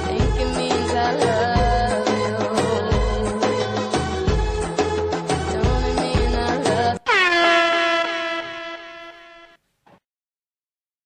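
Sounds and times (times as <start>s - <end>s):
air horn blast: 7.0s - 9.6s.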